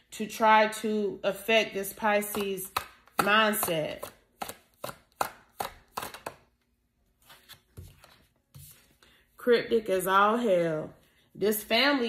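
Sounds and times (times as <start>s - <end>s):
cards being shuffled: 7.2s - 9.0s.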